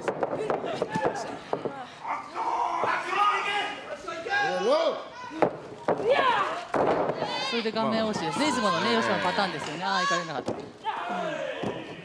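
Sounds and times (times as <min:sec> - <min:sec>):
people shouting: 0:02.0 - 0:12.0
wrestlers slapping and thudding: 0:05.4 - 0:07.4.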